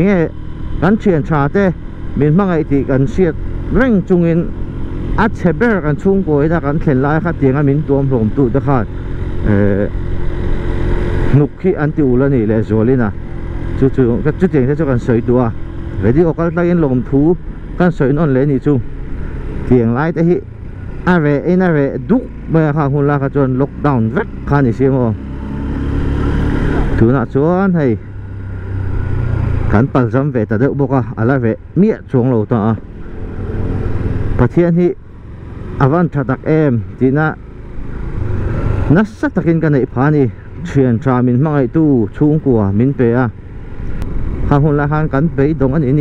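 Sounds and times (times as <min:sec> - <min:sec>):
motorcycle engine rumble: 0:00.0 - 0:46.0
road and wind noise: 0:00.0 - 0:46.0
person talking: 0:05.2 - 0:10.0, 0:13.8 - 0:18.8.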